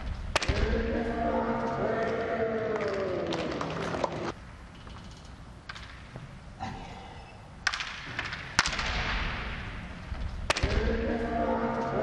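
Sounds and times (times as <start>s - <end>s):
bamboo swords clacking: 7.6s - 9.6s.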